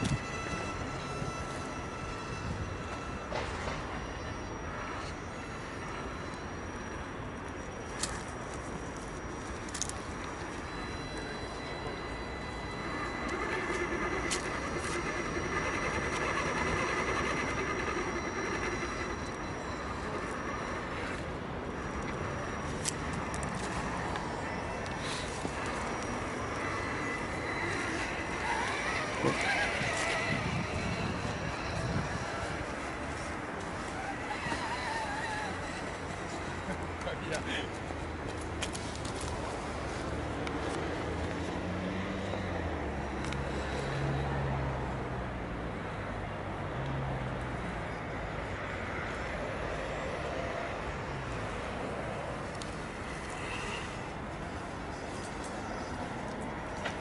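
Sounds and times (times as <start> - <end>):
electric motor whining: 0.0 - 44.6.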